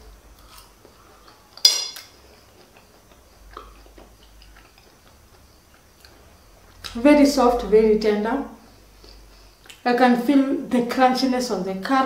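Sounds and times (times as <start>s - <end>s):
metal fork clinking on plate: 1.6s - 2.1s.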